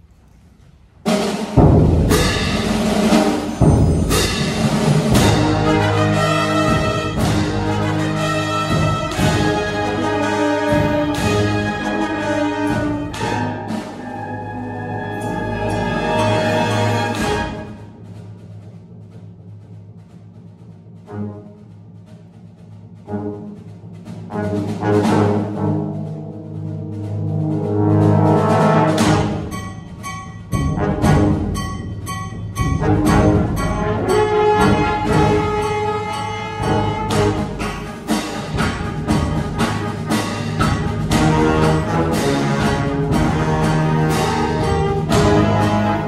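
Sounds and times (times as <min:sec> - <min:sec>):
brass ensemble playing: 0:01.1 - 0:18.0, 0:23.1 - 0:29.5, 0:32.7 - 0:46.0.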